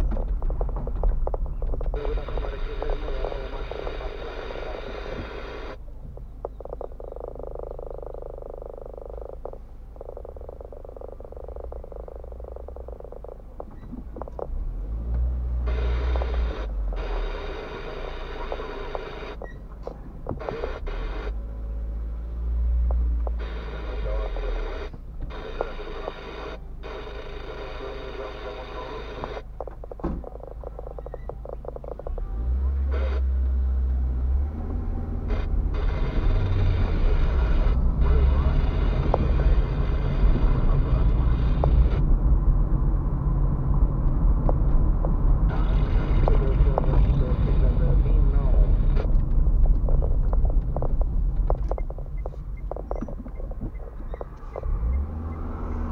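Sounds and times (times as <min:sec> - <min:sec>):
engine and tyre rumble: 0:00.0 - 0:55.9.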